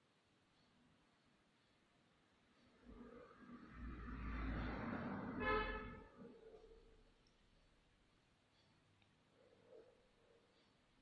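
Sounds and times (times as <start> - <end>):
rushing background noise: 2.1 - 7.1
short horn toot: 5.4 - 6.1.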